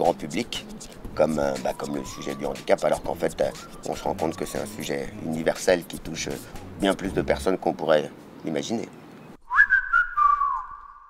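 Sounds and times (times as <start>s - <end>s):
high two-note whistling: 1.3s - 5.0s, 9.4s - 11.0s.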